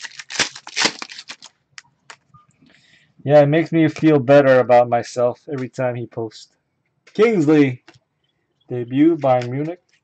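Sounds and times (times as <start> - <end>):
wrapper tearing and crinkling: 0.0 - 1.5.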